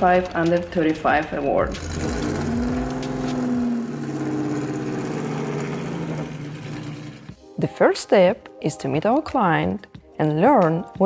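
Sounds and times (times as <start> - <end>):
car engine running: 1.6 - 7.4.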